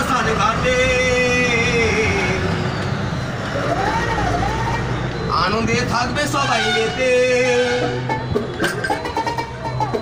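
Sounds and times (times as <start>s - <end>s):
man singing long notes: 0.0s - 2.6s
traffic and street noise: 0.0s - 10.0s.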